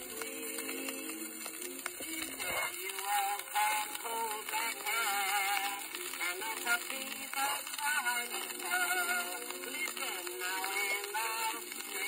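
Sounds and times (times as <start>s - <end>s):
tenor singing with vibrato: 0.0s - 12.0s.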